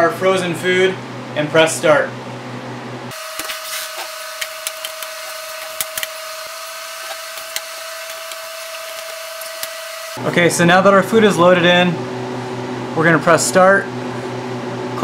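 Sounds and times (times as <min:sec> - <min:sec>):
trays clicking and knocking: 0:04.4 - 0:06.2.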